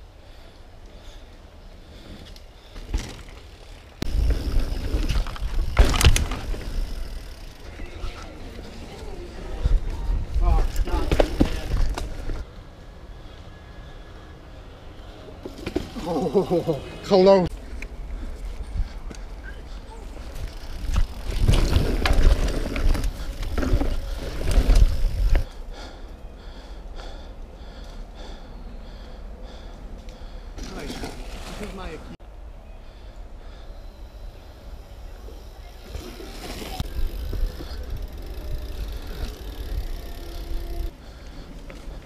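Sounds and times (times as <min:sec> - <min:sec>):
bike tyres on dirt trail: 0:00.2 - 0:32.2, 0:32.9 - 0:42.0
bike rattling: 0:02.1 - 0:12.5, 0:15.4 - 0:25.5, 0:35.4 - 0:42.0
bike knocks and rattles: 0:02.8 - 0:07.2, 0:10.6 - 0:12.4
tyre rumble on dirt: 0:20.9 - 0:25.4.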